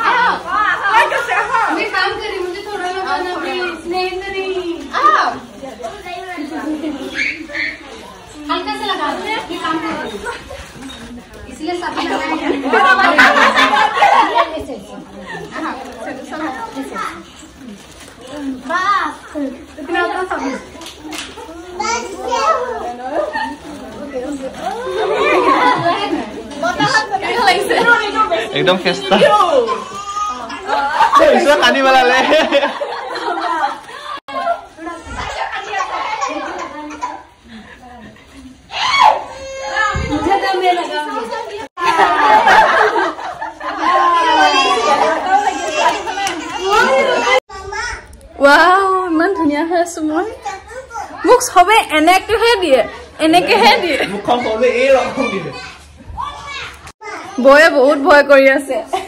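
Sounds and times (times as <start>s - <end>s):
children chattering: 0.0s - 59.0s
women and girls talking: 0.0s - 59.0s.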